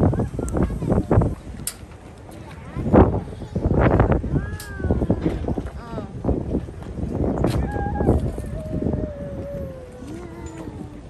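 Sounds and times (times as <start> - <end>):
people's voices: 0.0 - 11.0
wind buffeting microphone: 0.0 - 11.0.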